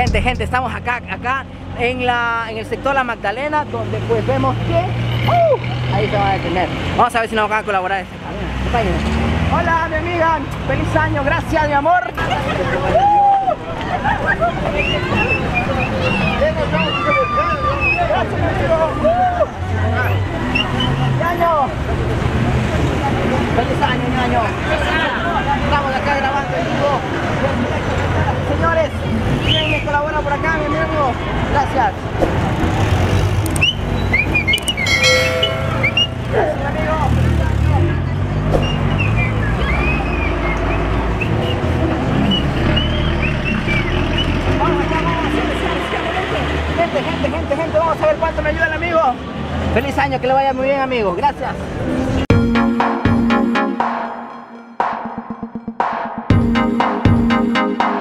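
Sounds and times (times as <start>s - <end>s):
people talking: 0.0s - 6.7s
cars passing: 0.0s - 55.0s
car horn: 34.8s - 36.4s.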